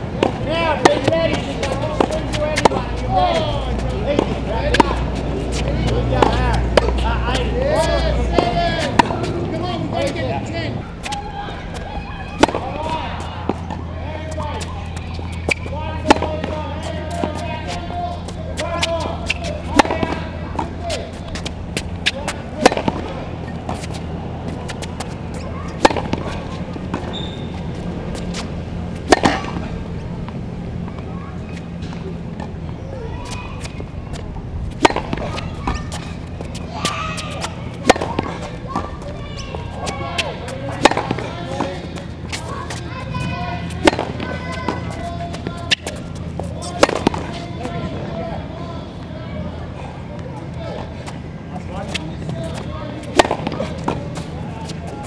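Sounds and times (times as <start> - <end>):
steady low hum: 0.0 - 55.0
racket striking tennis ball: 0.1 - 10.2, 11.0 - 29.8, 33.2 - 42.8, 43.6 - 47.5, 51.8 - 55.0
tennis ball bouncing: 0.1 - 47.8, 51.8 - 55.0.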